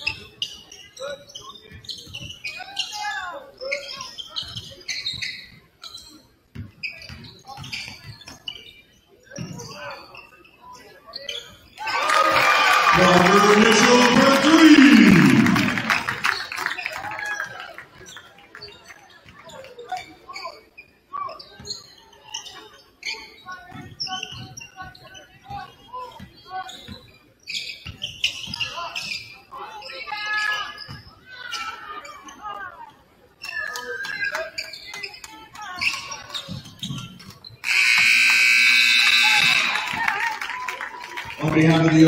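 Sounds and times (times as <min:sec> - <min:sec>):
sneakers squeaking on wooden floor: 0:00.0 - 0:11.8, 0:19.5 - 0:29.4, 0:30.6 - 0:31.7, 0:33.3 - 0:39.8
people calling out: 0:11.8 - 0:16.0
scoreboard horn: 0:37.6 - 0:39.8.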